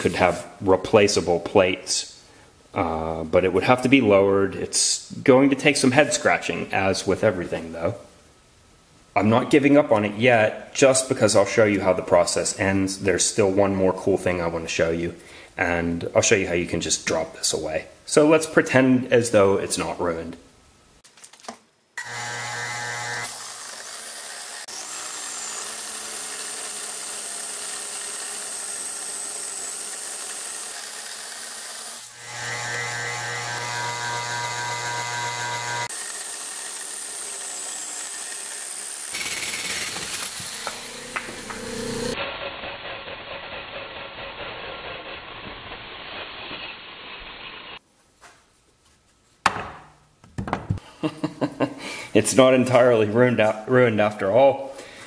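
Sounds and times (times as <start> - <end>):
motor hum: 22.0 - 23.3, 32.1 - 36.7, 39.0 - 42.2
hole saw cutting wood on lathe: 22.0 - 47.8
knocks: 49.4 - 50.8.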